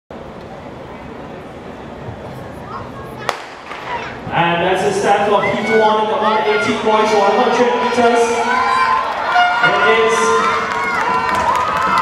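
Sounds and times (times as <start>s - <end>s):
crowd murmur: 0.2s - 12.0s
starting pistol crack: 3.3s - 3.9s.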